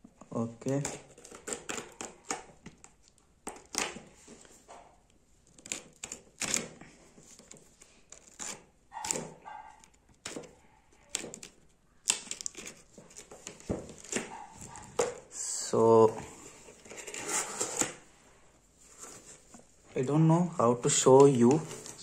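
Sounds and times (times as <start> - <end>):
tearing packing tape and cardboard: 0.6 - 4.1, 5.5 - 14.8, 16.8 - 18.0.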